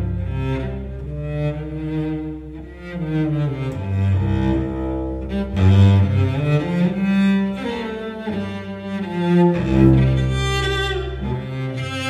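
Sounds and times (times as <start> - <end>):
cello bowing low notes: 0.0 - 12.0.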